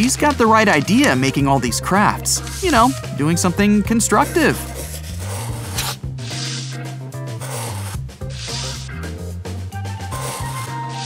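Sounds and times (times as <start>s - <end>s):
background music with bass line: 0.0s - 11.0s
pencil scratching on paper: 4.1s - 8.9s, 10.0s - 10.8s.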